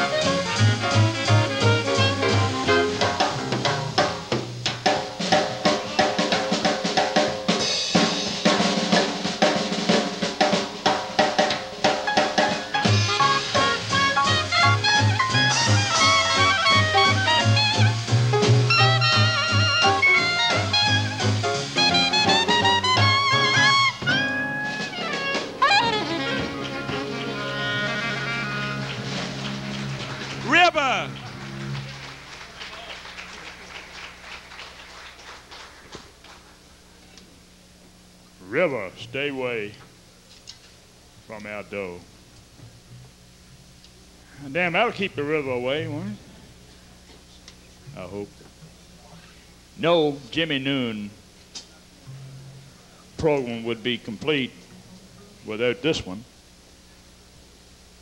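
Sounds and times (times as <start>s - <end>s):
snare and cymbal strokes: 0.0s - 30.6s
swing jazz band playing: 0.0s - 34.1s
voice calling out: 30.4s - 31.2s
string bass: 52.0s - 52.9s.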